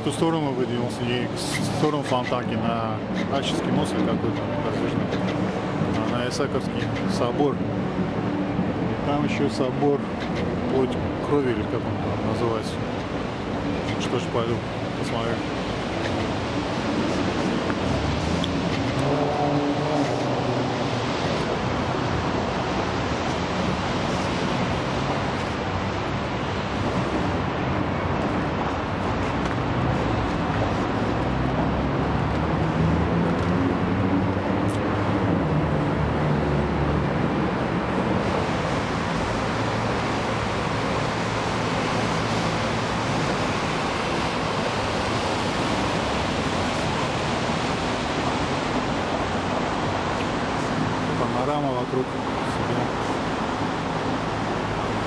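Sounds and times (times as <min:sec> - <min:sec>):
city street traffic: 0:00.0 - 0:55.0
low engine hum: 0:06.8 - 0:55.0.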